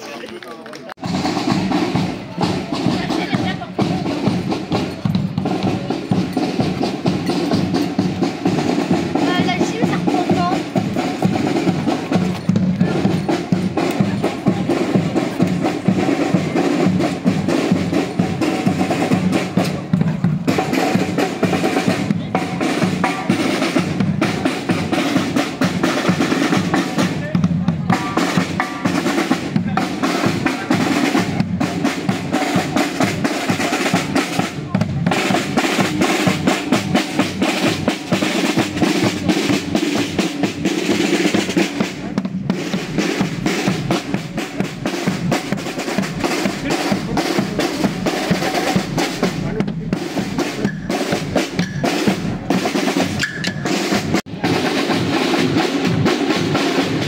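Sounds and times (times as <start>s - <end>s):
street band playing: 0.0s - 57.0s
snare drum rolls: 0.9s - 57.0s
wind instruments: 1.0s - 57.0s.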